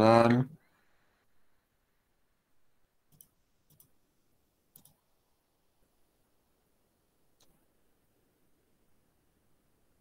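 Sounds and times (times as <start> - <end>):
faint computer mouse clicks: 3.1 - 4.0, 4.7 - 5.0, 7.4 - 7.6.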